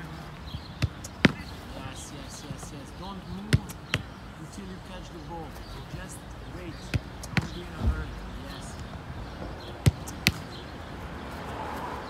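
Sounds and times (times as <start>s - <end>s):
faint voices: 0.0s - 9.7s
football thudding: 0.6s - 1.5s, 3.4s - 4.1s, 6.9s - 8.1s, 9.8s - 10.4s.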